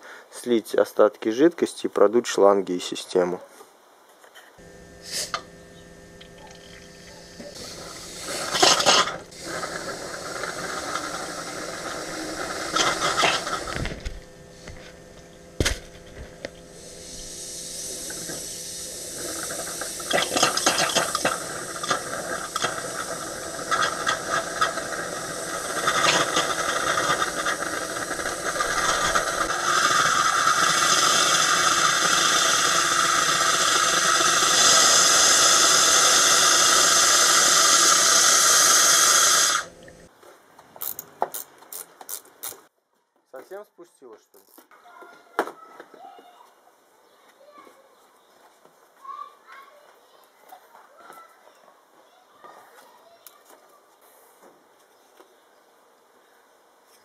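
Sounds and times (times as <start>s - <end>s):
compressed air blow gun hissing: 5.0s - 5.6s, 6.2s - 40.1s.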